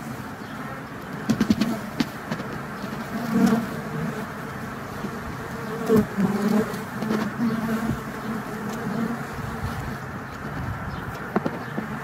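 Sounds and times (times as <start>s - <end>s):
hum of many bees: 0.0s - 12.0s
single bee buzzing close: 0.4s - 10.1s.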